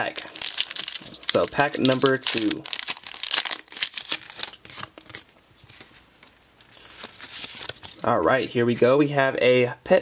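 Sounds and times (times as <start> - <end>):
foil pack tearing and crinkling: 0.0 - 5.2.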